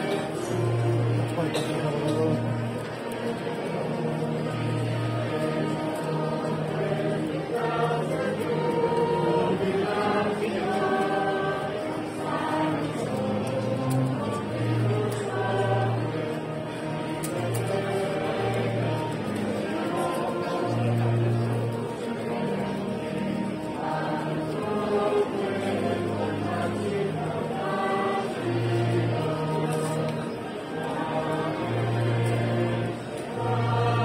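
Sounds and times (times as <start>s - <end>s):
choir singing: 0.0s - 34.0s.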